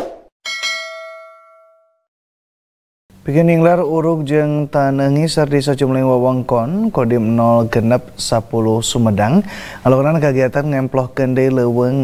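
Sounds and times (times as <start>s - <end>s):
notification bell ding: 0.4s - 2.1s.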